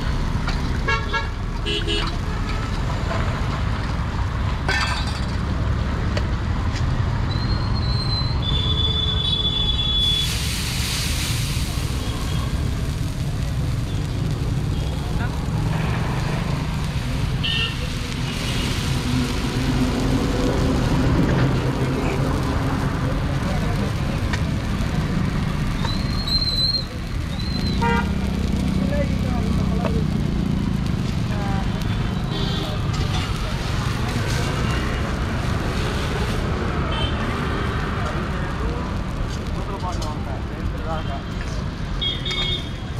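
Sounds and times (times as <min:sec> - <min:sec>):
road traffic rumble: 0:00.0 - 0:42.9
broad hiss: 0:09.9 - 0:36.6
vehicle horn toots: 0:27.8 - 0:28.1.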